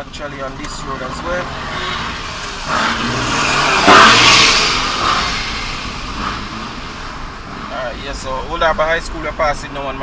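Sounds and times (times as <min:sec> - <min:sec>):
vehicle passing close by: 0:00.9 - 0:07.7.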